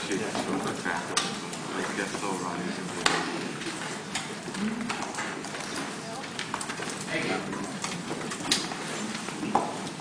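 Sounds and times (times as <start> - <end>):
murmur of voices: 0.0 - 9.7.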